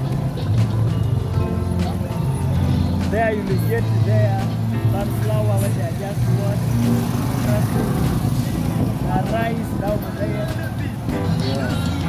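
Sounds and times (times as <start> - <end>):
people's voices: 0.0 - 12.0
traffic engine hum: 0.0 - 12.0.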